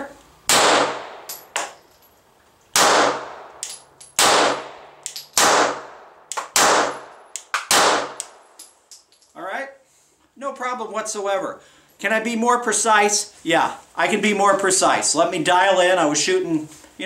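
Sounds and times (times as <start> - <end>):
pistol shots ringing: 0.5 - 1.8, 2.8 - 8.4
brass casings clinking: 1.1 - 2.3, 3.2 - 5.4, 6.9 - 9.4.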